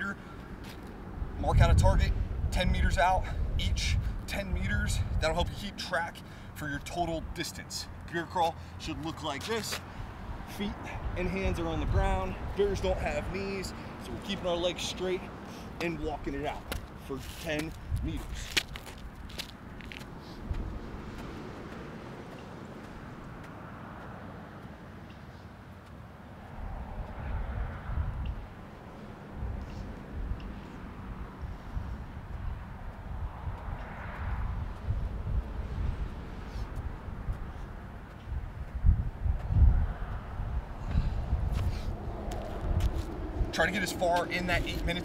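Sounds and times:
steady outdoor rumble: 0.0s - 45.0s
wind buffeting microphone: 0.9s - 6.0s, 9.8s - 15.2s, 15.8s - 23.6s, 26.5s - 45.0s
footsteps on concrete: 8.4s - 11.0s, 12.8s - 27.2s, 28.2s - 45.0s
hands and feet tapping ground: 15.8s - 24.8s.

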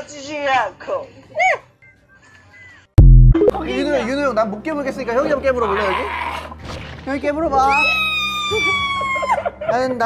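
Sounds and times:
man's falsetto squeal: 7.7s - 9.4s.

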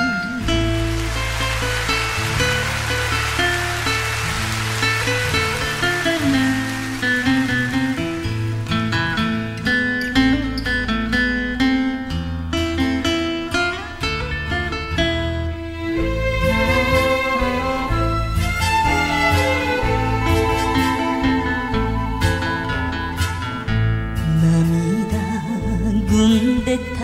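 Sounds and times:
plucked guitar notes: 0.0s - 27.0s.

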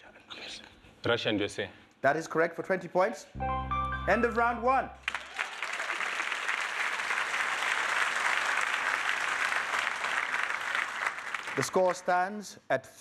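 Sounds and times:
low musical note: 3.4s - 5.0s
audience applauding: 5.0s - 12.0s.

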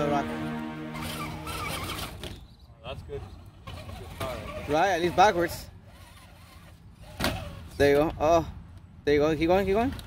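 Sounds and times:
electric motor whining: 0.0s - 2.3s.

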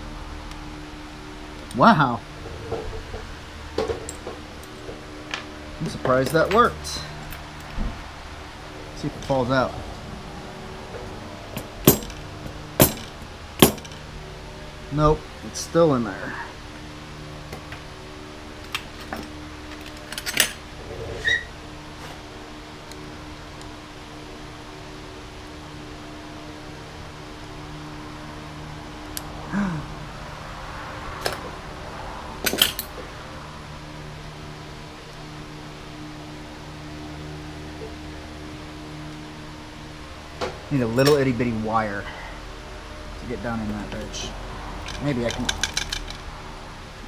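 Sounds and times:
steady hum: 0.0s - 47.0s
hand tools clicking on metal: 44.8s - 46.2s.

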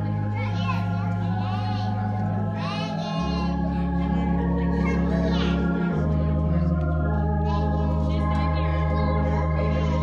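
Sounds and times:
children chattering and calling: 0.0s - 10.0s
organ playing slow chords: 0.0s - 10.0s.

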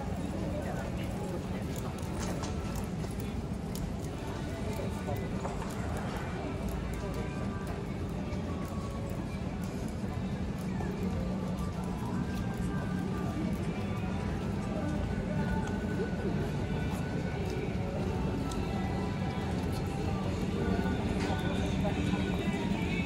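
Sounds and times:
murmur of voices: 0.0s - 23.0s.

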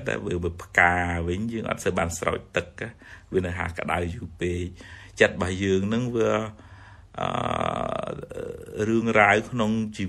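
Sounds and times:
man speaking: 0.0s - 10.0s.

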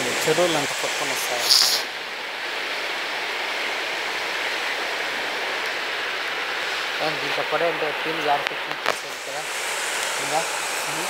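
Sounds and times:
river in flood rushing: 0.0s - 11.0s.

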